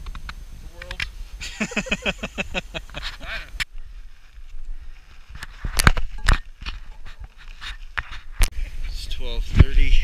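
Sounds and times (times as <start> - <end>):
person breathing heavily: 3.0 - 4.0.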